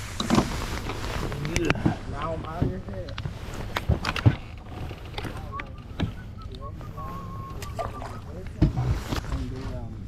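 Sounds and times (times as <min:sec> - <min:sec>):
thin whistle-like tone: 0:05.3 - 0:08.7.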